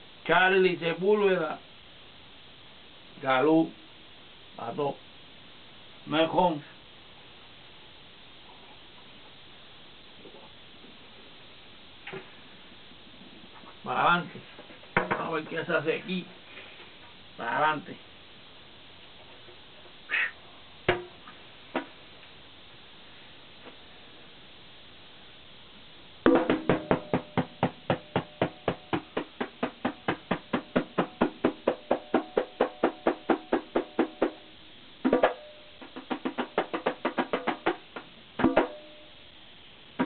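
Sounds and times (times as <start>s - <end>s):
room hiss: 0.0s - 40.0s
man speaking: 13.8s - 14.5s, 15.2s - 16.3s, 17.4s - 18.0s
conga drum played by hand: 26.3s - 38.9s.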